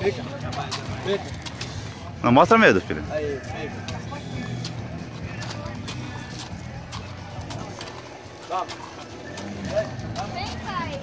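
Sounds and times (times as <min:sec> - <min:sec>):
faint voices: 0:00.0 - 0:11.0.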